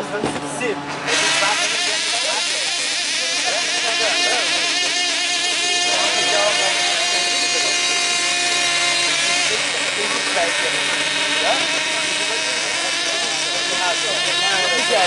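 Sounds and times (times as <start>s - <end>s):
model aircraft engines at high revs: 1.0s - 15.0s.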